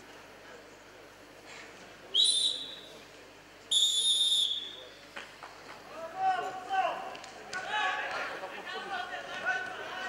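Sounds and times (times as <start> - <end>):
referee's whistle blasts: 2.2 - 2.9, 3.7 - 4.9.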